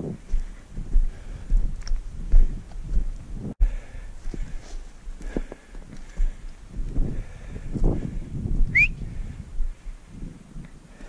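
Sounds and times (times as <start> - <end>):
footsteps on stony ground: 0.0 - 10.8.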